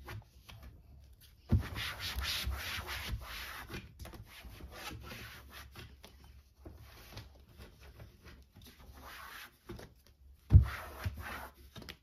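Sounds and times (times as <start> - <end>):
cloth rubbing cabinet panel: 1.5 - 5.8, 10.5 - 11.6.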